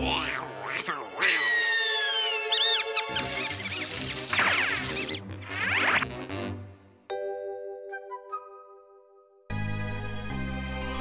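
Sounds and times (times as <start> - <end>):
cartoon background music: 0.0 - 11.0
cartoon mice squeaking: 0.7 - 5.9.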